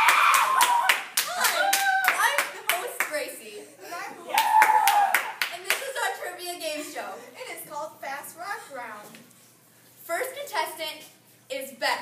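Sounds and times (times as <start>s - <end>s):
small group clapping: 0.0s - 3.3s, 4.3s - 6.1s
voices calling out and cheering: 0.0s - 7.4s.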